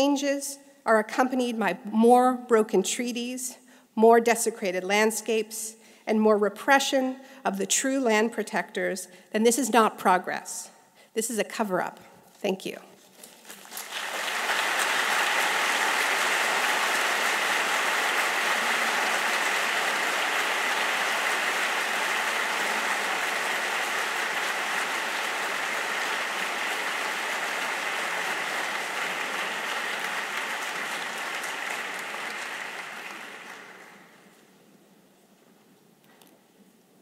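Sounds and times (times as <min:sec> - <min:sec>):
audience applauding: 0:13.4 - 0:34.4.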